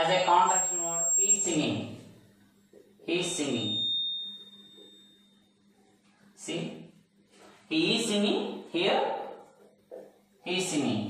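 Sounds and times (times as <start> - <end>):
high ringing tone: 0.0 - 6.3
low steady hum: 0.0 - 11.0.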